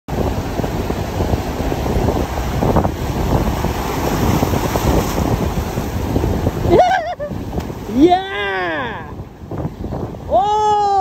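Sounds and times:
surf washing through rocks: 0:00.1 - 0:11.0
wind buffeting microphone: 0:00.1 - 0:11.0.

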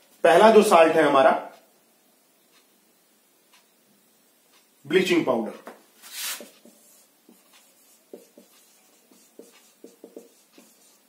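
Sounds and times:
marker pen writing on whiteboard: 0:05.6 - 0:11.0.

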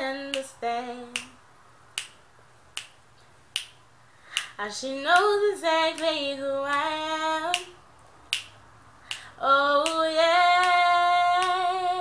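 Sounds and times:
person singing unaccompanied: 0:00.0 - 0:01.4, 0:04.4 - 0:07.8, 0:09.1 - 0:12.0
finger snaps: 0:00.2 - 0:01.4, 0:02.0 - 0:11.7.

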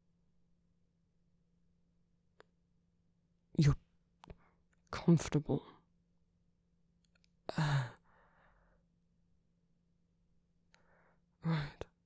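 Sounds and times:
man sighing: 0:07.5 - 0:08.2.

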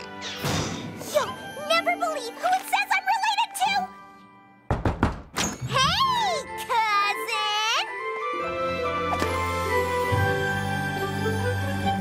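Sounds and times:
wooden door thud: 0:04.7 - 0:05.4.

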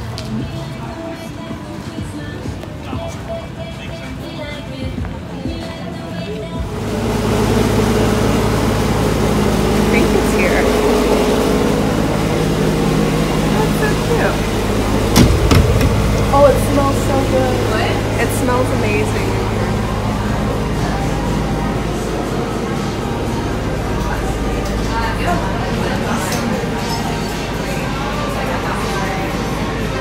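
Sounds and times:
faint voices: 0:00.0 - 0:15.2, 0:15.8 - 0:30.0
low mechanical hum: 0:00.0 - 0:30.0.

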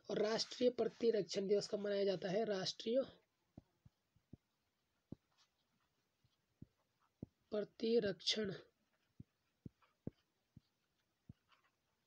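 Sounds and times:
faint taps on a touchscreen: 0:03.5 - 0:05.6, 0:06.6 - 0:07.4, 0:09.0 - 0:11.8.

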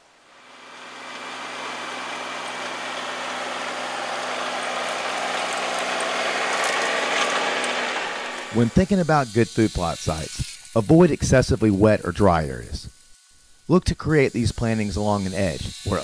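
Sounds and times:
tractor engine running: 0:00.4 - 0:09.0.

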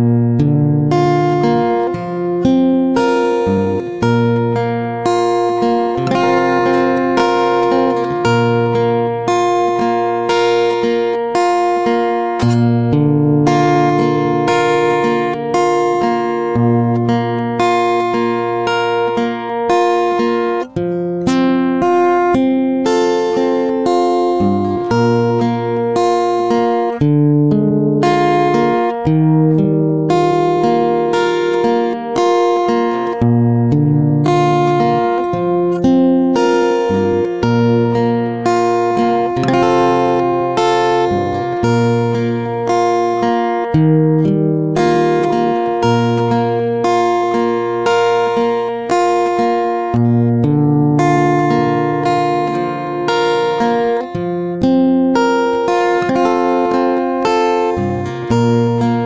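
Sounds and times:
strummed acoustic guitar chords: 0:00.0 - 0:59.0.

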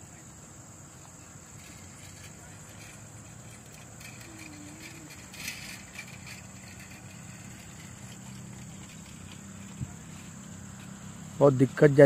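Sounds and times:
low steady hum: 0:00.0 - 0:11.4
high insect drone: 0:00.0 - 0:12.0.

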